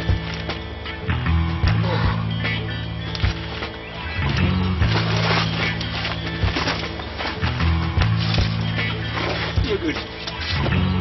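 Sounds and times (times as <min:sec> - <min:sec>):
deep bass line: 0:01.0 - 0:11.0.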